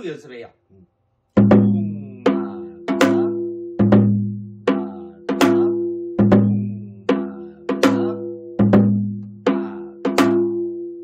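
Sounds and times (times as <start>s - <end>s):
deep drum strokes: 1.4s - 10.5s.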